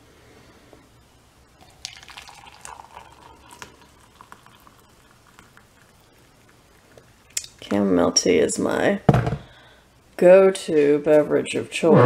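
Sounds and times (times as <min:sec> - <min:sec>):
water pouring into a mug: 0:01.6 - 0:07.2.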